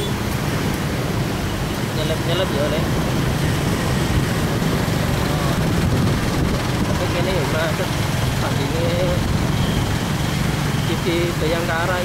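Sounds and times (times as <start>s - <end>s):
road noise: 0.0s - 12.0s
vehicle engines rumbling: 0.0s - 12.0s.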